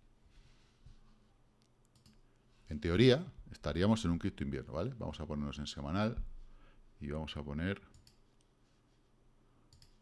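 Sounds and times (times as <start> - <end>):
computer mouse clicks: 1.6 - 2.2, 7.9 - 8.2, 9.7 - 10.0.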